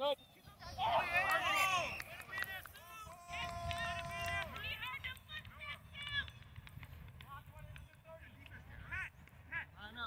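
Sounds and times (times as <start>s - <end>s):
distant players shouting: 0.6s - 6.3s.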